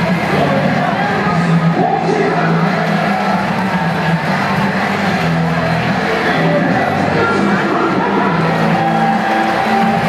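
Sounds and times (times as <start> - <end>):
crowd cheering: 0.0 - 10.0
music over loudspeakers: 0.0 - 10.0.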